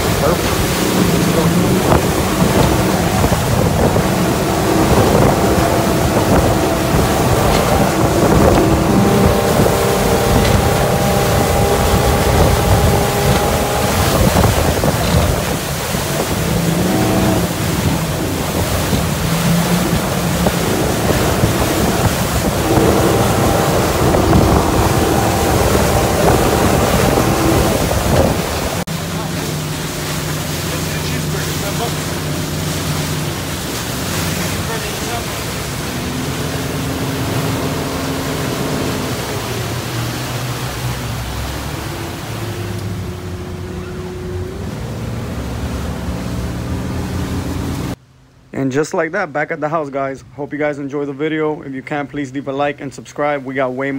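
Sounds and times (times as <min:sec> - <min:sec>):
wind on microphone: 0:00.0 - 0:48.0
outboard engine running: 0:00.0 - 0:48.3
rushing wake water: 0:00.0 - 0:53.9.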